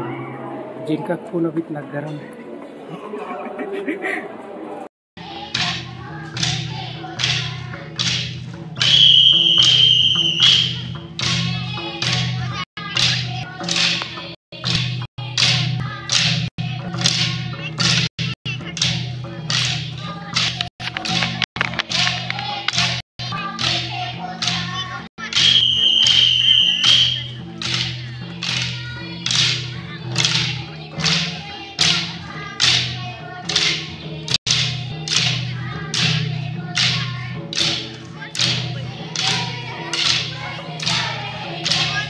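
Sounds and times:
barrel drums beaten in rhythm: 5.2s - 42.0s.

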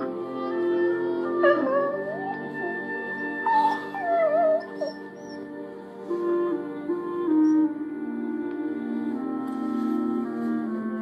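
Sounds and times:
soft background music: 0.0s - 11.0s
dog whining: 1.3s - 5.5s.

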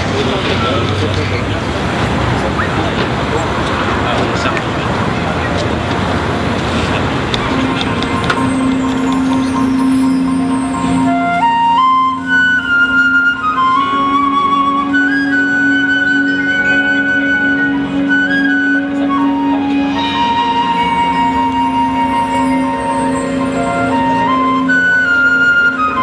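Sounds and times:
crowd noise: 0.0s - 26.0s
high flute-like melody: 6.4s - 26.0s
low held note: 14.8s - 26.0s.

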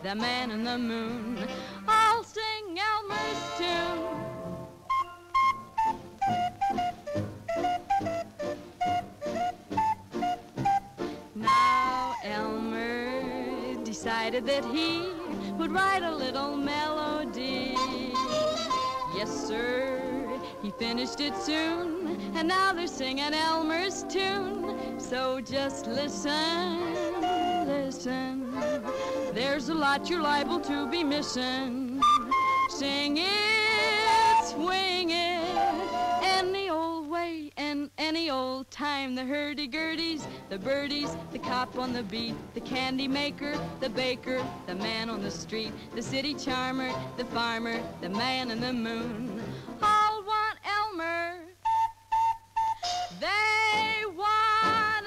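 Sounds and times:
woman singing: 0.0s - 4.4s, 11.4s - 51.6s, 53.0s - 55.0s
swing band: 0.0s - 36.6s, 40.0s - 50.1s, 52.6s - 55.0s
clarinet solo: 3.1s - 13.8s, 17.0s - 22.2s, 25.8s - 36.4s, 51.5s - 54.0s
small handheld wind instrument: 4.8s - 12.5s, 17.5s - 19.2s, 26.6s - 29.4s, 31.9s - 36.4s, 51.6s - 54.0s.

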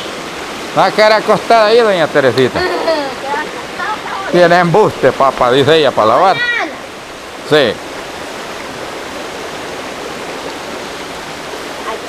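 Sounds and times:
river rushing over rocks: 0.0s - 12.0s.

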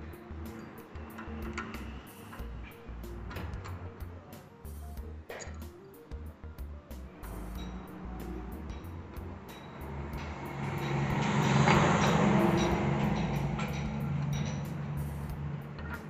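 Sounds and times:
background music: 0.0s - 16.0s
steady low hum: 0.0s - 16.0s
vehicle passing by: 6.8s - 16.0s.

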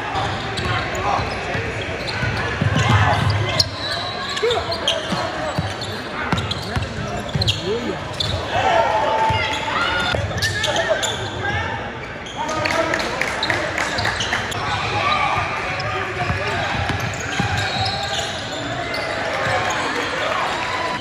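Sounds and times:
shouts and chatter: 0.0s - 21.0s
basketball bouncing on court: 15.8s - 18.2s.

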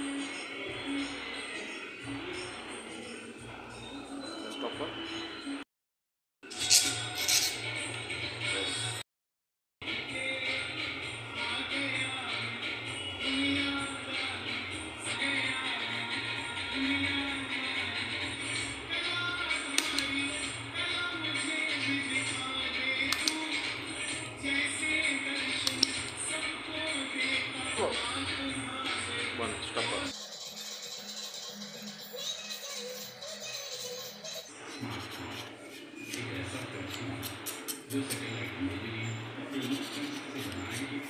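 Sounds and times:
background music with steady beat: 0.0s - 5.6s, 9.8s - 32.2s, 34.6s - 41.0s
nail tip cutter snap: 19.8s - 20.1s, 23.1s - 23.4s, 25.7s - 26.2s.

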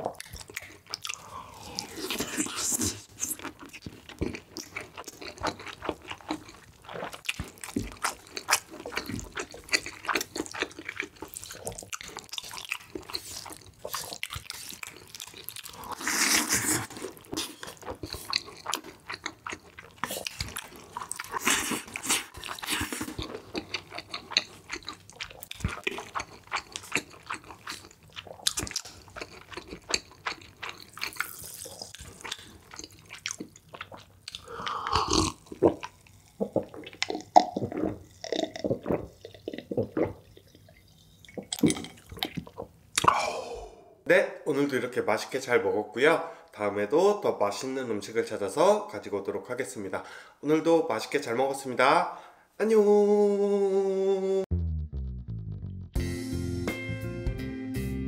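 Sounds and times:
wet chewing and smacking: 0.0s - 43.2s
slurping noodles: 15.7s - 18.4s.

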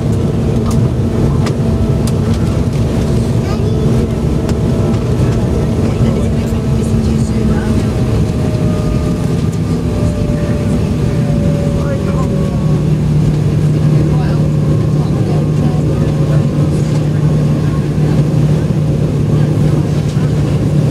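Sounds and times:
jet engines humming and whining: 0.0s - 20.9s.

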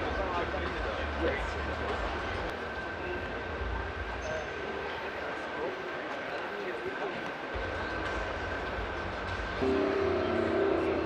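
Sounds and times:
crowd chatter: 0.0s - 11.0s
steady high tone: 9.6s - 11.0s
sustained music notes: 9.6s - 11.0s.

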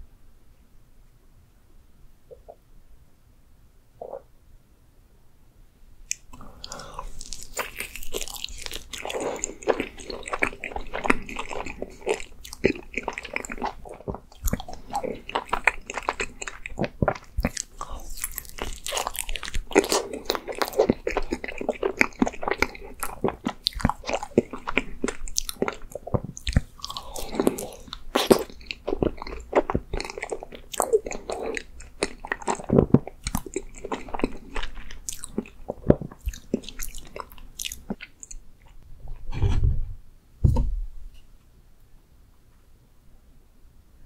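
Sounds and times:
biting and chewing: 6.1s - 38.4s.

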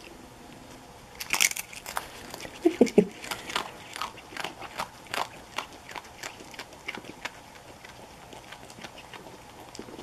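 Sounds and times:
animal chewing crunchy food: 0.0s - 10.0s.

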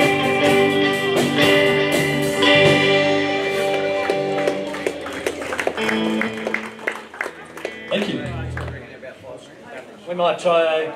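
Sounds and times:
electric guitars and keyboard playing: 0.0s - 9.6s.

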